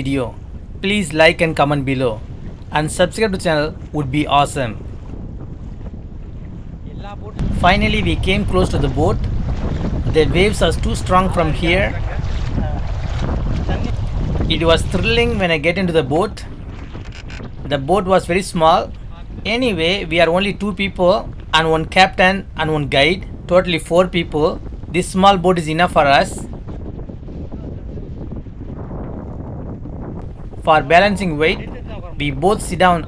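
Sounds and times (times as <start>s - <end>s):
choppy seawater splashing: 0.0s - 33.0s
wind buffeting microphone: 0.0s - 33.0s.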